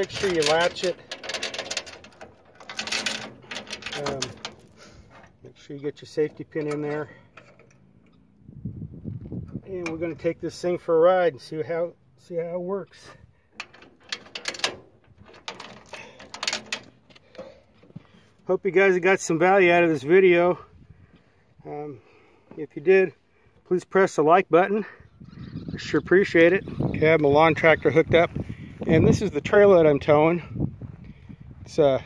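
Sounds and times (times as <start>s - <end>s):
metal hitch parts clinking: 0.0s - 8.4s, 9.4s - 10.6s, 12.9s - 18.6s.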